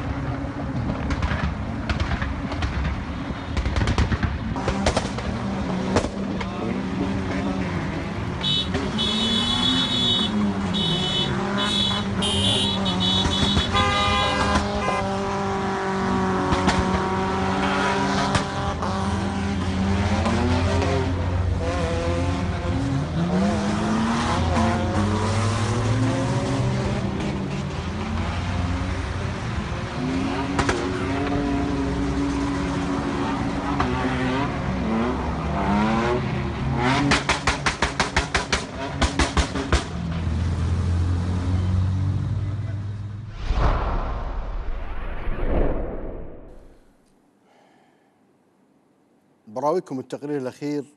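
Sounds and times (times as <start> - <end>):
car engines revving: 0.0 - 43.6
car horn blasts: 8.4 - 15.2.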